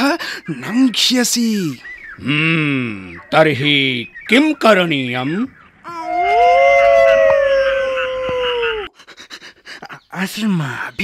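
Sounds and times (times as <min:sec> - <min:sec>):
jackal howling: 0:05.9 - 0:08.9.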